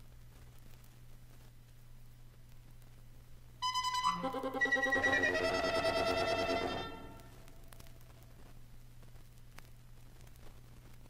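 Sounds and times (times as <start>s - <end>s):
wind ensemble chord cluster: 3.6s - 7.4s.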